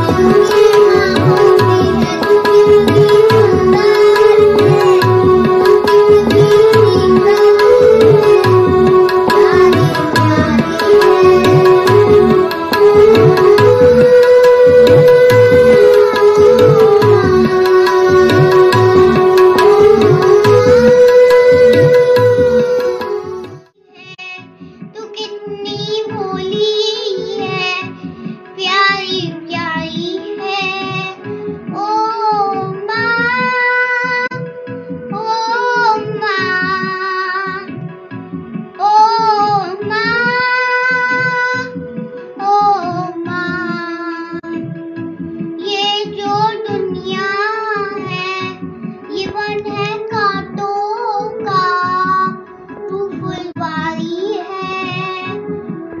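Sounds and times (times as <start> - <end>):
child singing: 0.0 - 23.4, 24.0 - 28.0, 28.6 - 34.5, 35.1 - 37.7, 38.8 - 44.6, 45.6 - 55.6
instrumental backing with drone: 0.0 - 23.8, 24.4 - 56.0.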